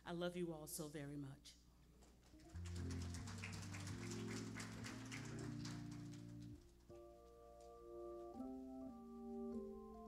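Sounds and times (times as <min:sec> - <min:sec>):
organ playing low chords: 0:02.6 - 0:10.0.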